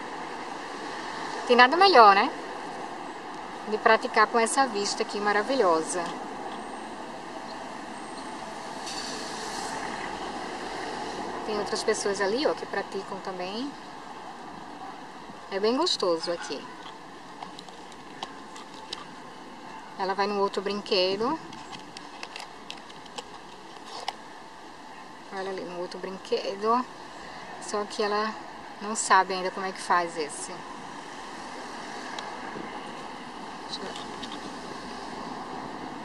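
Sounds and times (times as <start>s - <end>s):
outdoor background hiss: 0.0s - 36.0s
steady background noise: 0.0s - 36.0s.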